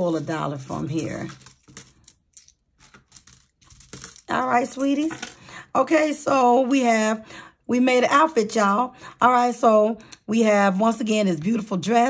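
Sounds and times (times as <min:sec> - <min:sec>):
coins clicking and tapping: 0:00.0 - 0:05.4.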